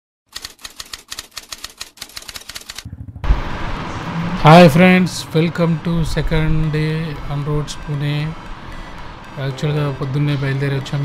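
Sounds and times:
typewriter-like clicks: 0.3 - 2.9
low hum: 2.8 - 7.2
steady rumbling noise: 2.8 - 7.9.

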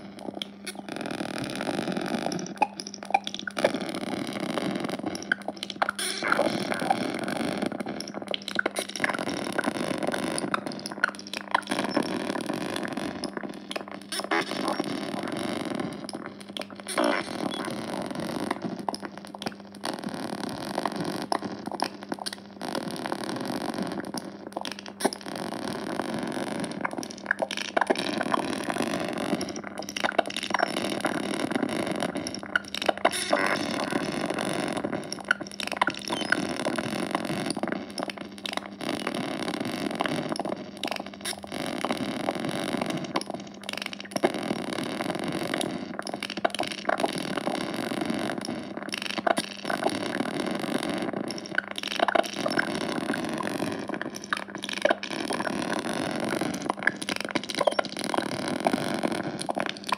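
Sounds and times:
crackles: 0.0 - 59.9.

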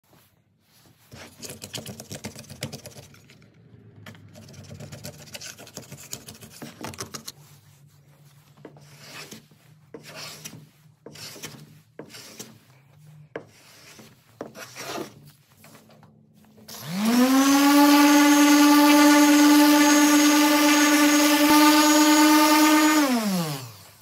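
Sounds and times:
faint knocks and rubbing: 0.8 - 16.6
electric orbital sander running: 16.7 - 24.0.

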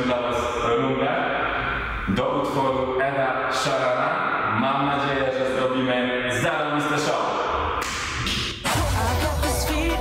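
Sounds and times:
bass-heavy intro music: 8.6 - 10.0.

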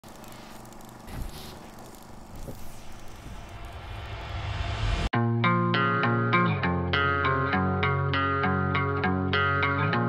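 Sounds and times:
low rumble: 3.2 - 5.1.

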